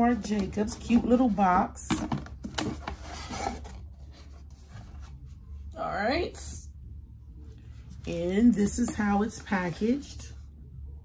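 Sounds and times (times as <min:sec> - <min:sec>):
cardboard box packaging scraping: 0:02.7 - 0:05.0.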